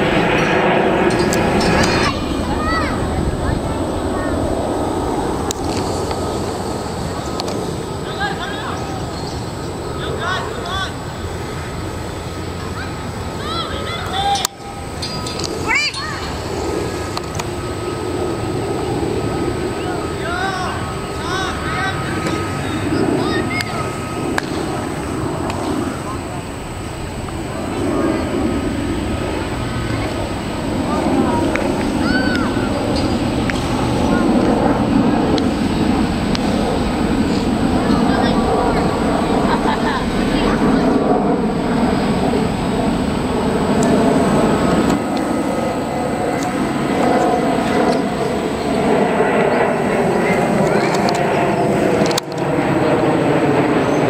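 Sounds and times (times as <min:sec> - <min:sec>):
jet airliner roar: 0:00.0 - 0:54.0.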